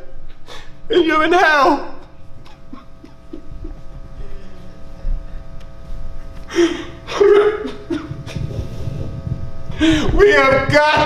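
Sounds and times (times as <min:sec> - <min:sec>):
man crying out: 0:06.5 - 0:08.0, 0:09.8 - 0:11.0.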